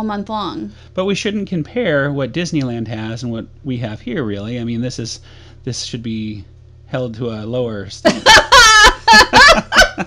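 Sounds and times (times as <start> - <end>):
person laughing loudly: 8.1 - 10.0.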